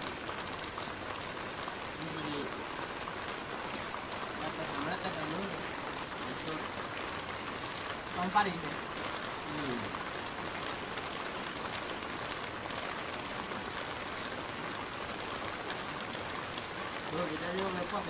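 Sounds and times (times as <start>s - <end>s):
steady rain falling: 0.0s - 18.0s.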